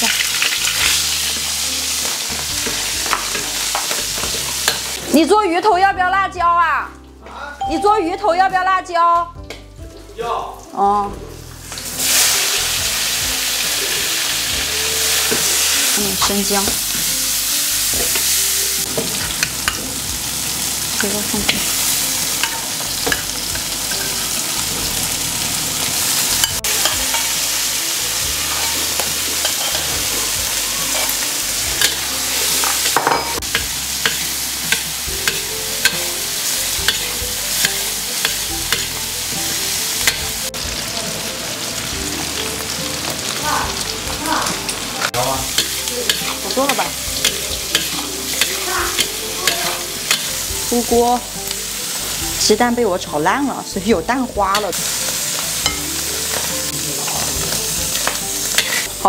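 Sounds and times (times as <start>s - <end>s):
meat sizzling in a wok: 0.0s - 5.5s, 11.2s - 59.0s
metal spatula scraping a wok: 25.9s - 27.7s, 28.3s - 40.4s, 45.5s - 50.8s, 54.5s - 59.0s.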